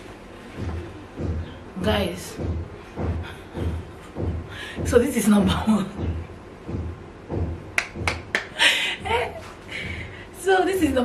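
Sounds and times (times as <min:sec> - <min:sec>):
soft low thumps: 0:00.4 - 0:11.0
hands snapping: 0:07.8 - 0:08.6.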